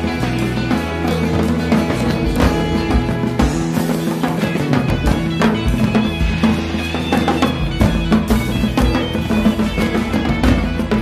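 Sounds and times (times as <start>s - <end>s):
band music: 0.0s - 11.0s
bass line: 0.0s - 11.0s
drum kit beat: 0.0s - 11.0s.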